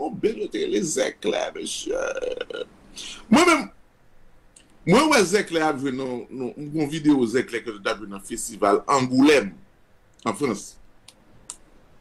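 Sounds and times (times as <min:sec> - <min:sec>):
man's wordless vocal sounds: 0:01.6 - 0:03.4.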